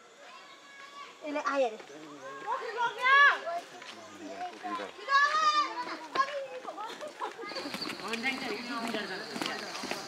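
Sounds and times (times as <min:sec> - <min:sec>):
voices calling to each other: 0:00.1 - 0:10.0.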